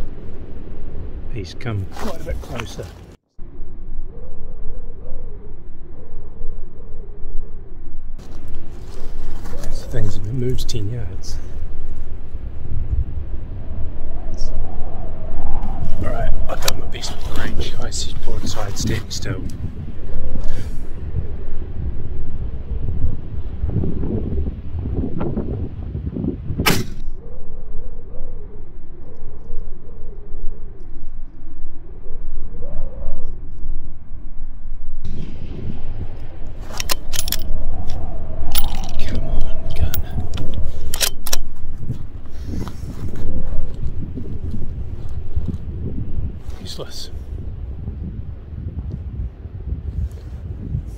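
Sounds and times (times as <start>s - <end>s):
wind buffeting microphone: 0.0s - 50.9s
sharp cracks and clicks: 40.0s - 41.5s.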